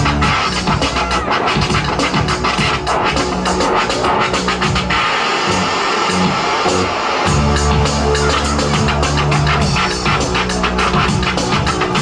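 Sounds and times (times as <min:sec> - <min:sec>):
turntable scratching: 0:00.0 - 0:12.0.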